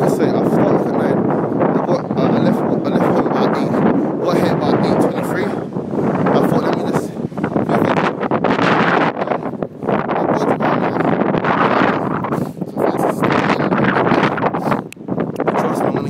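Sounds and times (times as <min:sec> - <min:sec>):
wind rushing over microphone: 0:00.0 - 0:16.0.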